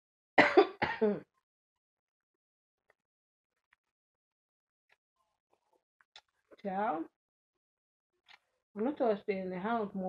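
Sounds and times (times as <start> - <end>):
woman clearing her throat: 0.4 - 1.2.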